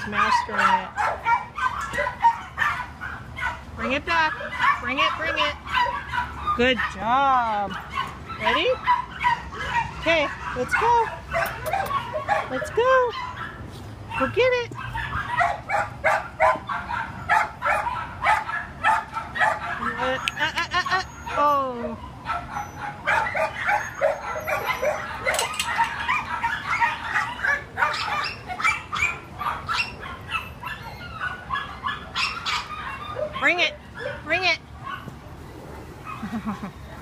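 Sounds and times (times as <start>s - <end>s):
dog yelps and whines: 0.0s - 3.6s, 4.2s - 7.1s, 7.7s - 35.2s
dogs barking: 0.0s - 37.0s.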